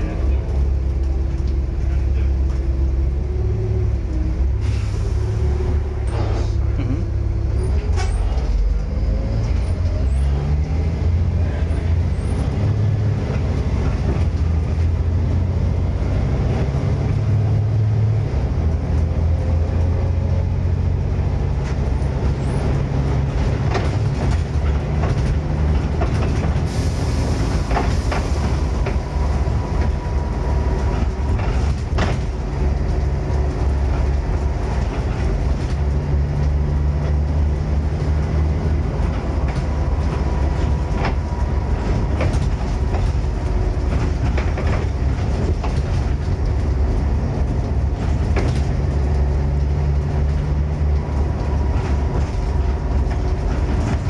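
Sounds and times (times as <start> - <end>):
bus body rattling: 0.0 - 54.0
bus diesel engine: 0.0 - 54.0.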